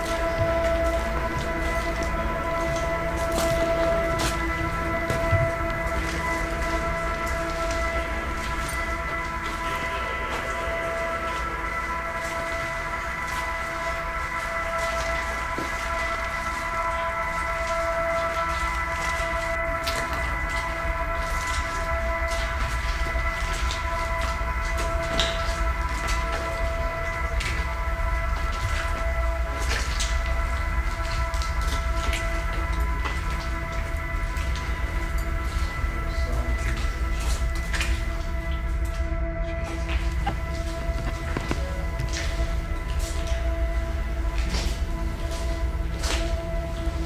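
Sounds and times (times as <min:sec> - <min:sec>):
low rumble: 0:00.0 - 0:47.0
pitched drone with overtones: 0:00.0 - 0:47.0.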